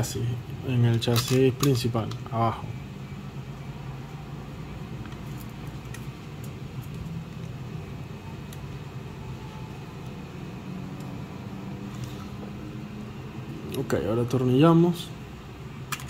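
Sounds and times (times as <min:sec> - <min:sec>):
low background hum: 0:00.0 - 0:16.0
plastic parts clicking: 0:00.8 - 0:02.3.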